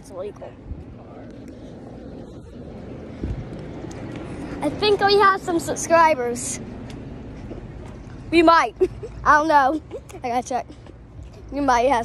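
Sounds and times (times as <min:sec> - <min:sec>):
low wind rumble: 0:00.0 - 0:12.0
microphone handling noise: 0:00.7 - 0:04.2.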